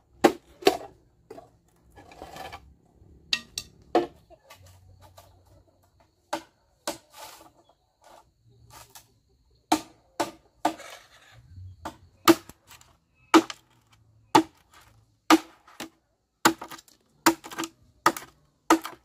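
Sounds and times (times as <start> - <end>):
machete chopping bamboo: 0.1 - 0.9, 6.3 - 7.1, 9.7 - 10.9, 11.8 - 19.0
bamboo pieces rustling: 0.3 - 2.8, 10.6 - 19.0.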